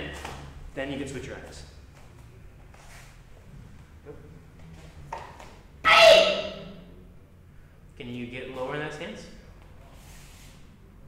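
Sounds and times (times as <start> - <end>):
person shouting sharply: 5.8 - 6.8.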